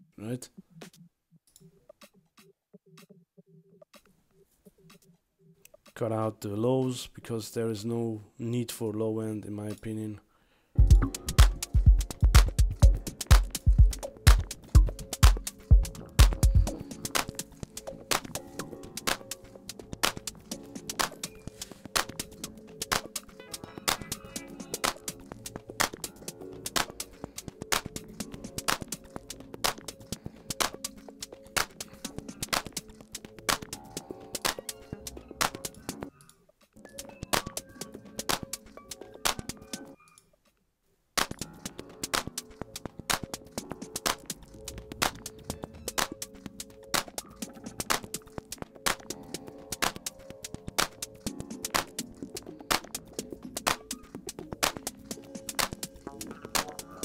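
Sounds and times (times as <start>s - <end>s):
minimal house track: 0.0s - 6.3s, 10.8s - 36.1s, 36.8s - 40.0s, 41.2s - 57.0s.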